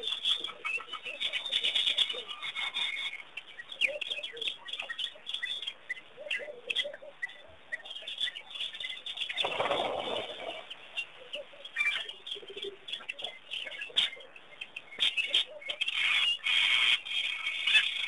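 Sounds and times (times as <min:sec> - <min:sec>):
birds chirping: 0:00.0 - 0:18.0
lower bird calls: 0:00.0 - 0:18.0.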